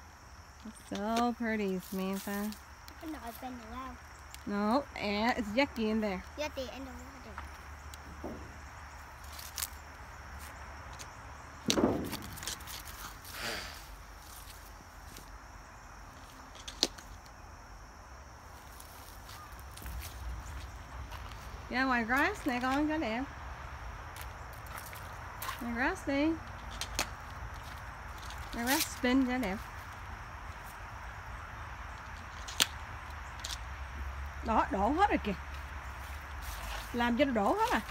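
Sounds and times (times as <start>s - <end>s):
faint hiss: 13.2s - 14.5s.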